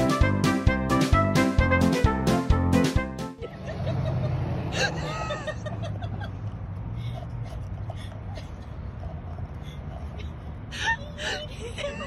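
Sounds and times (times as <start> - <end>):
low street rumble: 3.4 - 12.0.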